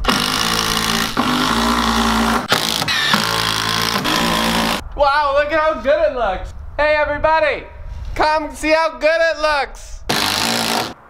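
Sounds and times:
cordless drill driving screws: 0.0s - 4.8s, 10.1s - 11.0s.

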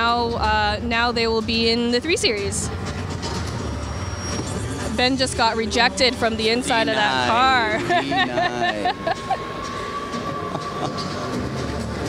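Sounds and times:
busy exhibition hall noise: 0.0s - 12.0s.

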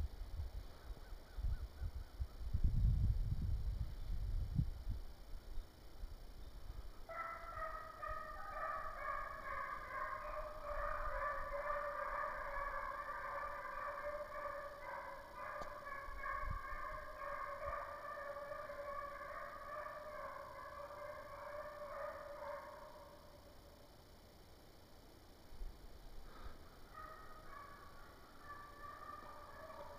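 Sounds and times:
hounds baying in chorus: 7.1s - 23.5s, 26.6s - 29.9s.

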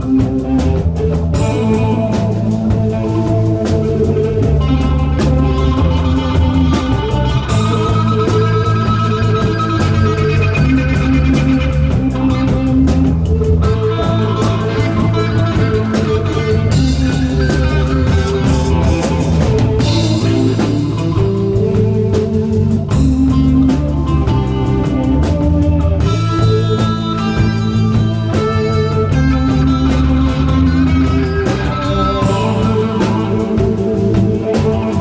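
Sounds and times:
bass guitar: 0.0s - 35.0s
drum kit: 0.0s - 35.0s
electric guitar: 0.0s - 35.0s
guitar note bending in pitch: 0.0s - 35.0s.

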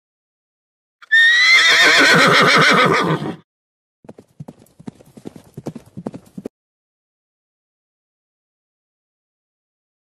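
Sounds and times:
horse whinnying: 1.0s - 3.4s.

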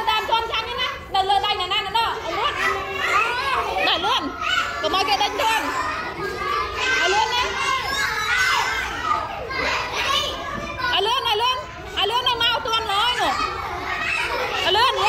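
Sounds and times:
children talking and calling out: 0.0s - 15.0s.

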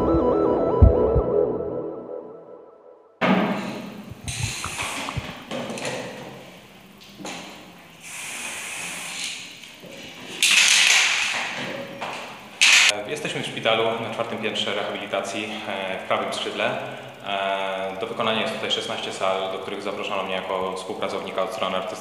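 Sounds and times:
spray can hissing: 4.2s - 5.4s, 8.0s - 9.6s.

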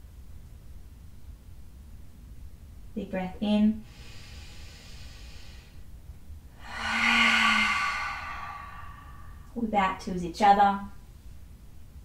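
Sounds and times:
woman breathing in: 3.8s - 5.8s, 6.6s - 9.6s
woman sighing loudly: 6.6s - 9.5s.

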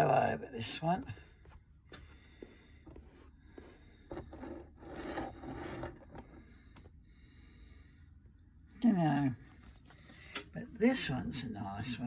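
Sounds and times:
faint scraping and rubbing: 1.1s - 6.8s.

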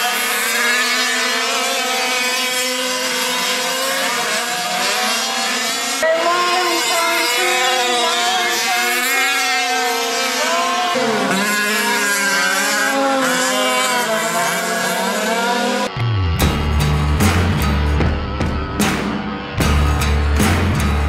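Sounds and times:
small two-stroke engines revving: 0.0s - 16.0s.

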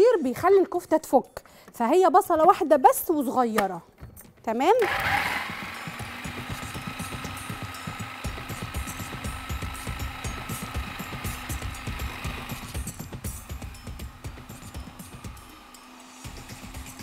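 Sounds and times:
food processor motor whine: 4.8s - 17.0s
background music with a beat: 5.5s - 17.0s.

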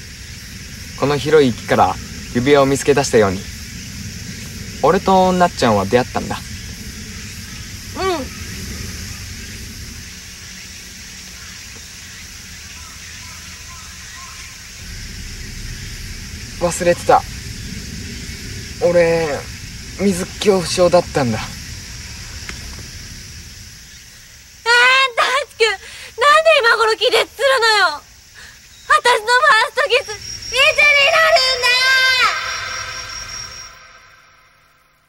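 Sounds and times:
low noise: 0.0s - 25.0s
outdoor background hiss: 0.0s - 35.0s.

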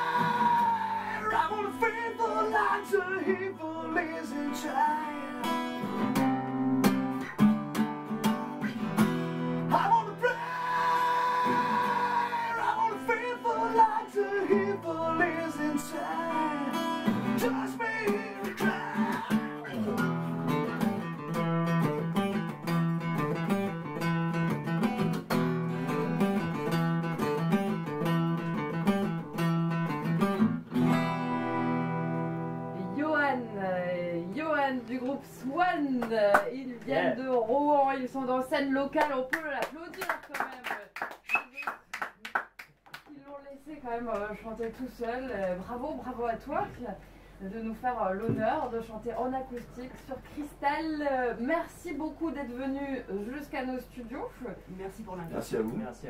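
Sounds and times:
man singing: 0.0s - 6.0s, 9.7s - 20.1s
acoustic guitar strumming: 0.0s - 36.5s.

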